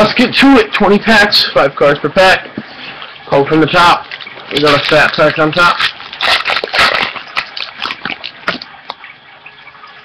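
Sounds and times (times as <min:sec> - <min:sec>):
wrapper tearing and crinkling: 0:04.2 - 0:08.6.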